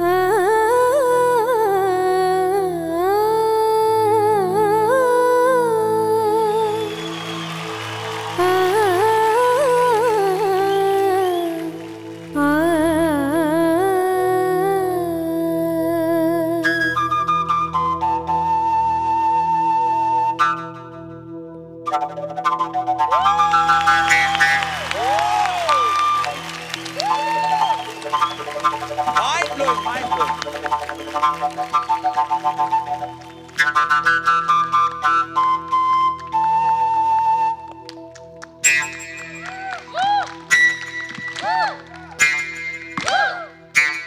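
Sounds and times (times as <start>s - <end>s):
low flute solo: 6.6s - 8.8s, 16.6s - 44.0s.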